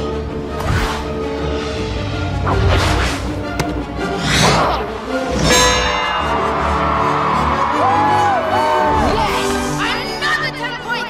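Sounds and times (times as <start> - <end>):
orchestral score: 0.0 - 11.0.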